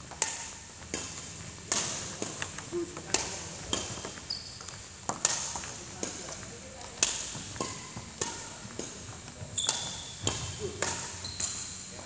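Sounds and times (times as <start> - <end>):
rackets striking shuttlecocks: 0.0 - 12.0
shoes squeaking on wooden court: 0.0 - 12.0.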